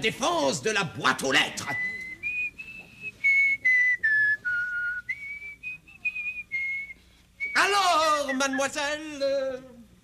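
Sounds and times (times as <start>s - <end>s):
person whistling a tune: 1.6s - 8.8s.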